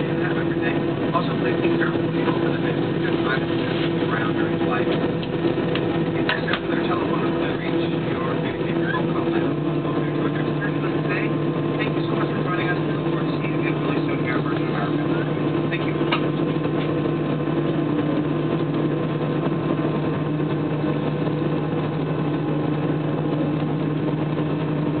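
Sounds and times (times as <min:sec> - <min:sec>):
faint voices: 0:00.0 - 0:17.3
jet engine cabin hum: 0:00.0 - 0:25.0.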